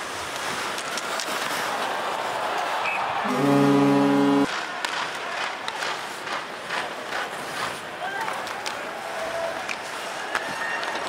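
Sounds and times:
sticks and skates clacking on ice: 0:00.0 - 0:03.5, 0:04.2 - 0:11.0
crowd murmur: 0:00.0 - 0:11.0.

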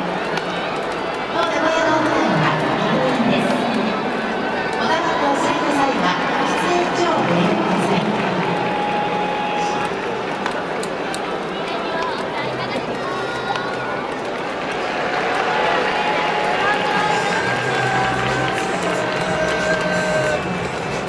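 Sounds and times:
crowd talking: 0:00.0 - 0:21.0
music playing: 0:12.4 - 0:21.0.

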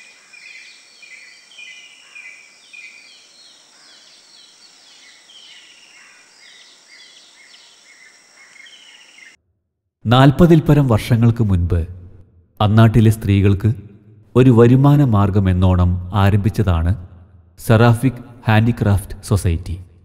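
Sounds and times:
small birds chirping: 0:00.0 - 0:09.4.

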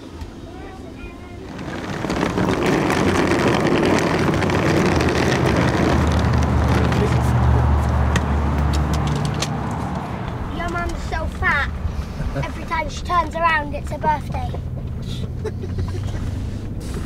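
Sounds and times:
vehicle engines rumbling: 0:00.0 - 0:17.0.

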